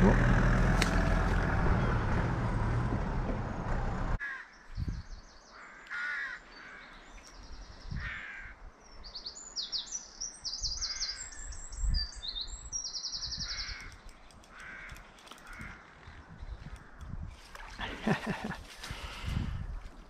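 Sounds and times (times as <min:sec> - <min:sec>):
birds trilling: 0:12.7 - 0:17.2.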